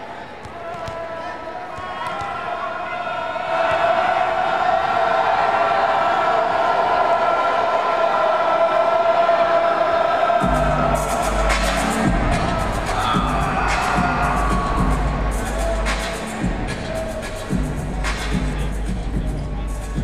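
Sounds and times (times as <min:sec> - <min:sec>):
crowd noise: 0:00.0 - 0:20.0
heavy bass beat with drum hits: 0:10.4 - 0:20.0
music over loudspeakers: 0:10.4 - 0:20.0.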